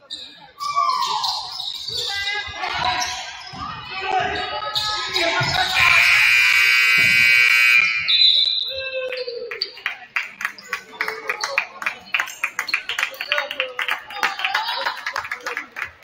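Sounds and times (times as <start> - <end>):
scoreboard buzzer: 5.8 - 8.0
basketball bouncing: 6.9 - 7.5.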